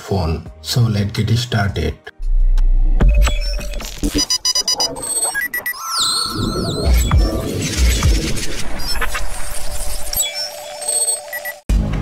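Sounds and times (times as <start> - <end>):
rapid electronic bleeps: 3.0 - 11.6
steady electronic tone: 3.0 - 11.6
short beeps: 3.2 - 7.1, 10.2 - 11.6.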